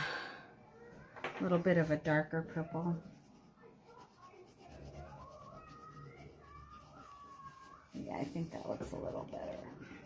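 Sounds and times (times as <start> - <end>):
crayon scratching on paper: 1.7 - 10.0.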